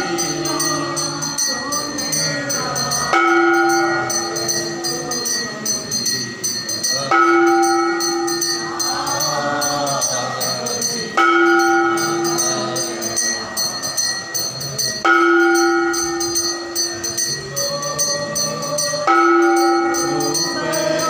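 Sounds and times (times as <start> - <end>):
deep temple bell ringing: 0.0 - 21.0
small bells jingling: 0.0 - 21.0
voices singing: 0.0 - 21.0.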